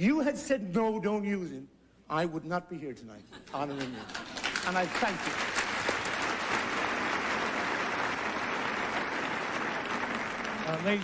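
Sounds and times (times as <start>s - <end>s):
audience applauding: 3.6s - 11.0s.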